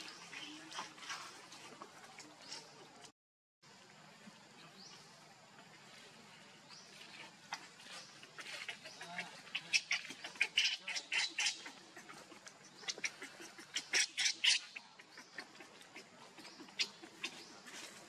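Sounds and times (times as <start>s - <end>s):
infant monkey squealing: 8.4s - 17.4s.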